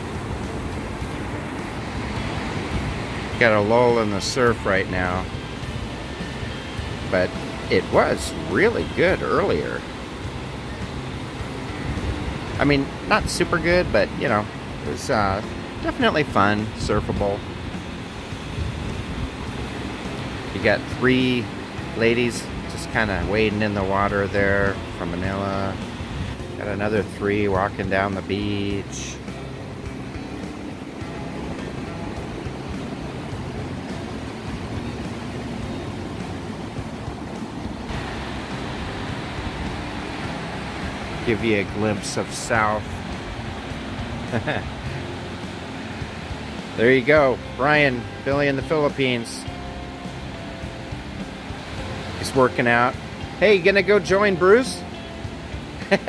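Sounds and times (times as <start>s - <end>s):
surf breaking on beach: 0.0s - 56.0s
wind on microphone: 10.4s - 14.2s, 16.9s - 20.6s.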